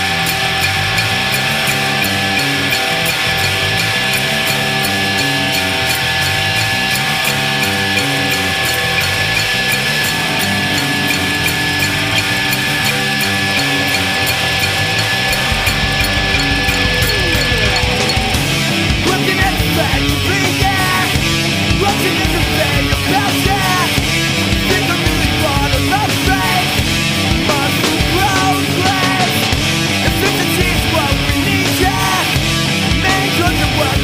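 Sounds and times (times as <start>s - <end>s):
bass line: 0.0s - 34.0s
distorted electric guitars: 0.0s - 34.0s
steady drums: 0.0s - 34.0s.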